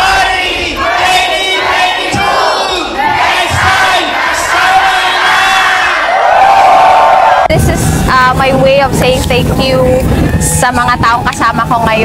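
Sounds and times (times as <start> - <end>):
crowd shouting and cheering: 0.0 - 8.8, 9.7 - 11.8.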